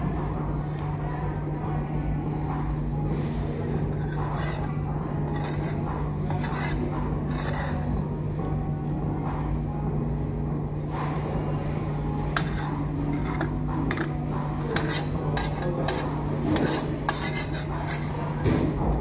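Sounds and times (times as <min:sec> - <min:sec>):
steady low hum: 0:00.0 - 0:19.0
cutlery scraping a ceramic dish: 0:03.7 - 0:07.9, 0:12.3 - 0:18.7.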